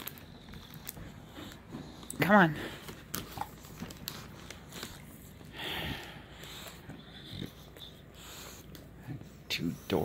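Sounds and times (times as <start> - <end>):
dog breathing and snuffling: 0.0 - 10.0.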